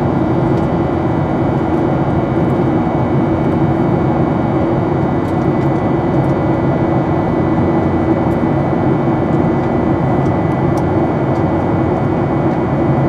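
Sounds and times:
jet engine drone: 0.0 - 13.0.

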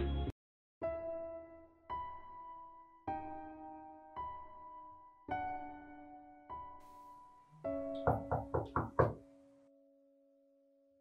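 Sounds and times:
background music tones: 0.0 - 10.7
quick knocks: 8.0 - 9.2.

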